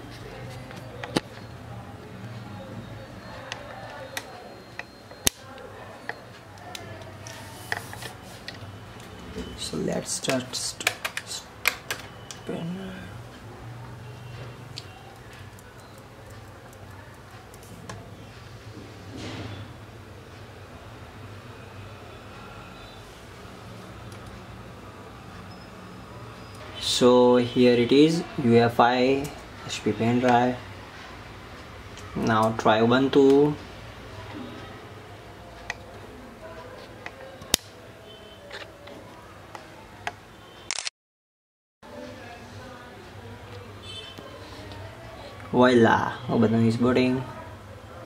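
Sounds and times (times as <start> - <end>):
laptop keys clicking: 10.2 - 12.4
sharp clicks: 40.7 - 40.9.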